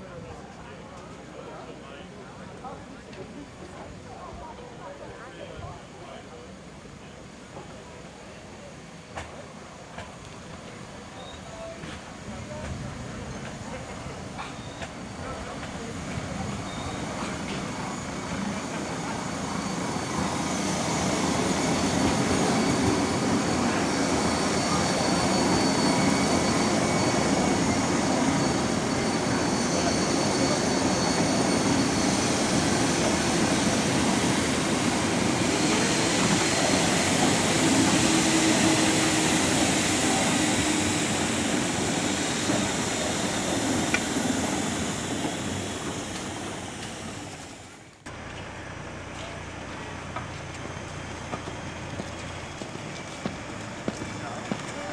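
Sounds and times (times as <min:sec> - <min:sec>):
electric train running past: 0:09.1 - 0:54.9.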